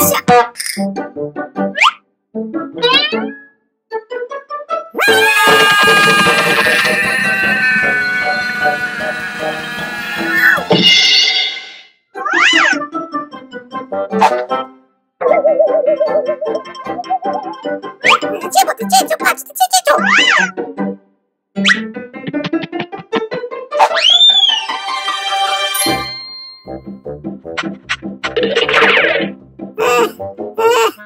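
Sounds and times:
cartoon music: 0:02.6 - 0:03.6, 0:05.0 - 0:10.9, 0:12.2 - 0:13.2, 0:15.2 - 0:20.7, 0:21.6 - 0:25.2, 0:28.3 - 0:31.0
wavering whistle: 0:05.1 - 0:10.6, 0:23.9 - 0:24.8
held tone with falling glide: 0:05.5 - 0:10.7
springy pitch sweeps: 0:06.4 - 0:10.7.

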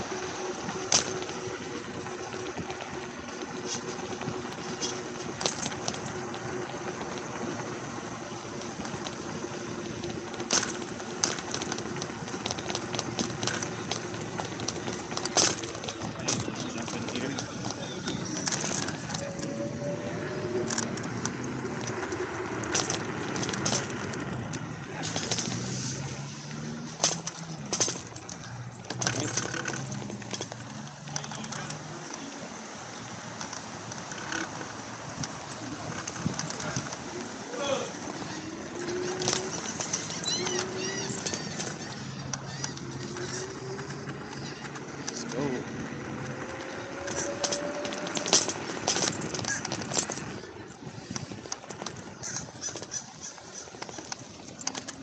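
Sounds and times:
scooter knocks and rattles: 0:00.0 - 0:32.4, 0:33.2 - 0:55.0
electric scooter hum: 0:00.0 - 0:55.0
road traffic: 0:00.0 - 0:55.0.

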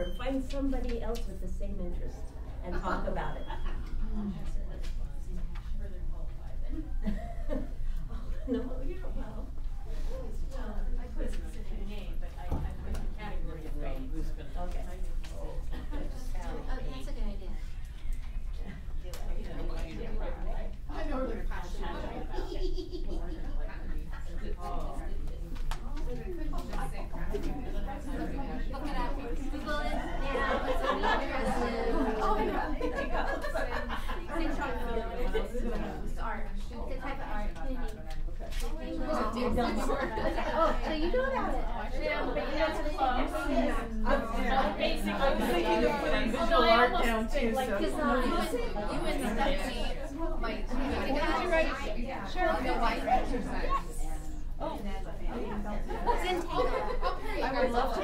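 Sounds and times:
crowd chatter: 0:00.0 - 0:58.0.

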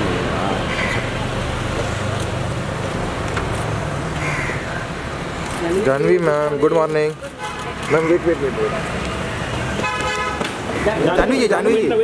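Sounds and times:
traffic hum and idling engines: 0:00.0 - 0:12.0
crow cawing: 0:00.7 - 0:01.2, 0:04.2 - 0:04.9, 0:07.9 - 0:08.4, 0:10.6 - 0:11.2.

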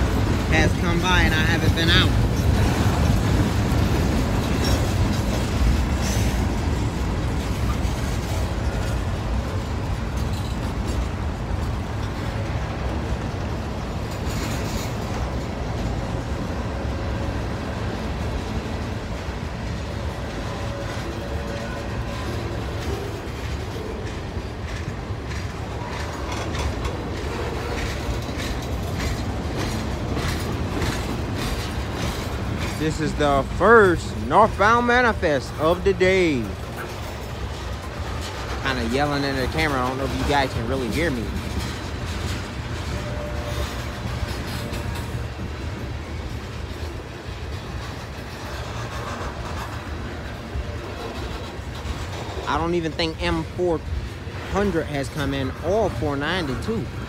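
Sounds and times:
train wheels rumbling on rail: 0:00.0 - 0:57.0
wheels clanking over rail joints: 0:00.0 - 0:57.0.

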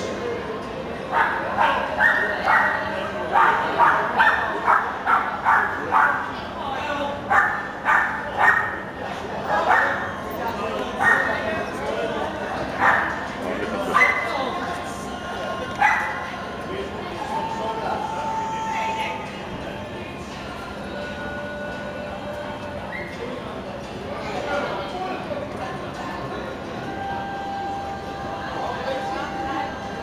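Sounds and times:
dog yapping: 0:07.3 - 0:08.8.

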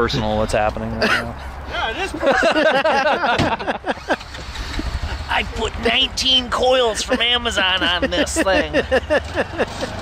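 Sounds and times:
men laughing: 0:00.9 - 0:05.7, 0:06.6 - 0:10.0.

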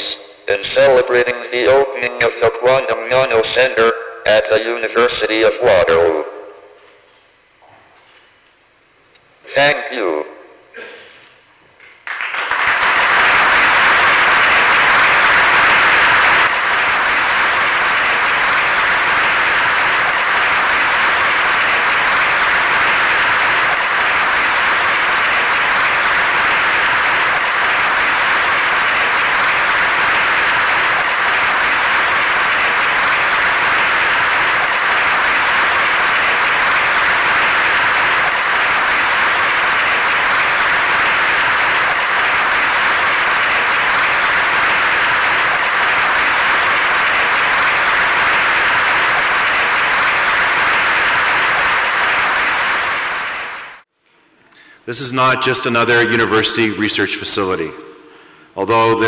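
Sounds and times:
audience applause: 0:00.0 - 0:02.7, 0:11.8 - 0:53.9.

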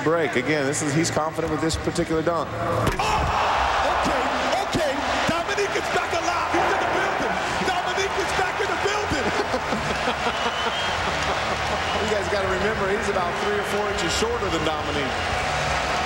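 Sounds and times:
crowd cheering and shouting: 0:02.8 - 0:16.0.

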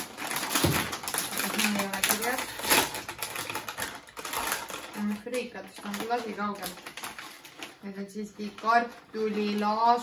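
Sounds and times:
plastic snack bag crinkling: 0:00.0 - 0:10.0.

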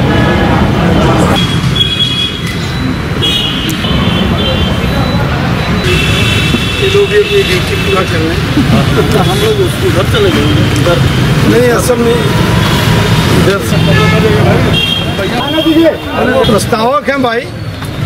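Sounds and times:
road traffic: 0:00.0 - 0:18.0
people talking: 0:04.3 - 0:05.8, 0:06.8 - 0:12.6, 0:13.3 - 0:17.5.

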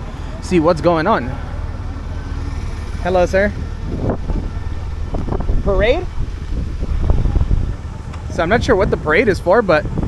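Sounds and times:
faint street noise: 0:00.0 - 0:10.0
wind buffeting microphone: 0:01.5 - 0:10.0.

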